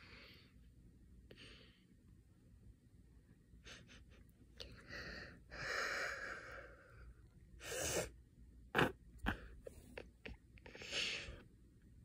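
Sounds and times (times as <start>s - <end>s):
person breathing: 0.0s - 0.7s, 1.3s - 2.0s, 3.6s - 8.1s, 10.6s - 11.5s.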